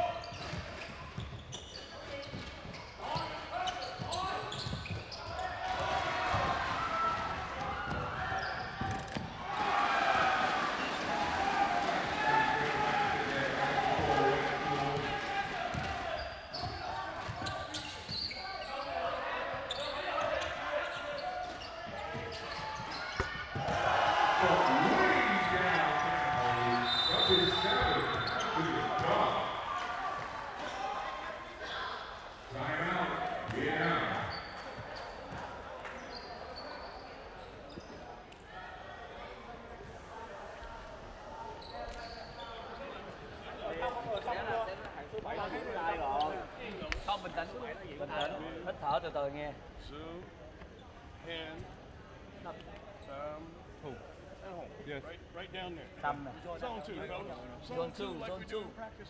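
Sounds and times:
players and spectators voices: 0:00.0 - 0:59.0
high whistle: 0:26.7 - 0:28.5.

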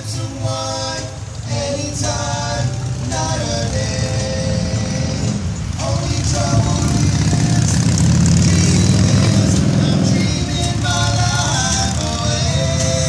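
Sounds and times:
music: 0:00.0 - 0:13.0
motorcycle engine passing: 0:02.2 - 0:13.0.

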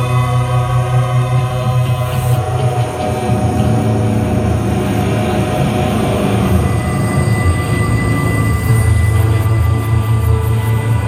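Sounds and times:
low bass drone: 0:00.0 - 0:11.0
sustained held tones: 0:00.0 - 0:11.0.

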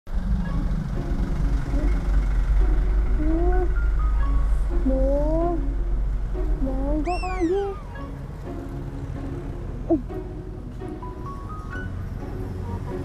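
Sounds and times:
street traffic rumble: 0:00.1 - 0:13.0.

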